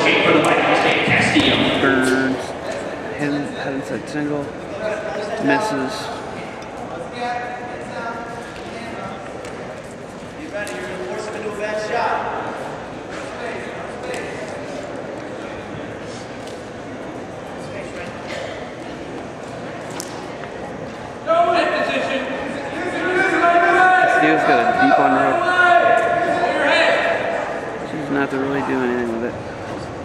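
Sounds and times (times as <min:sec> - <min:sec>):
hall background noise: 0:00.0 - 0:30.0
voices in a gymnasium hall: 0:00.0 - 0:30.0.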